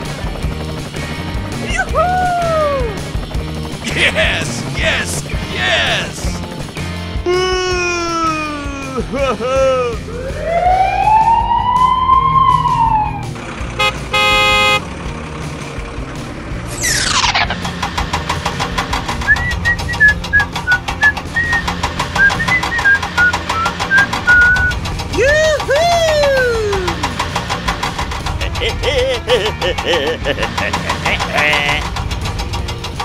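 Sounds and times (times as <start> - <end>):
cartoon whistle glides: 10.3 - 13.3, 22.2 - 24.7
rapid ratchet-like clicking: 29.6 - 33.0.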